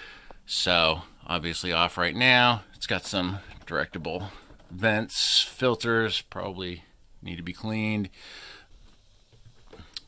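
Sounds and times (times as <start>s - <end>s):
man's short breath: 8.2s - 8.7s.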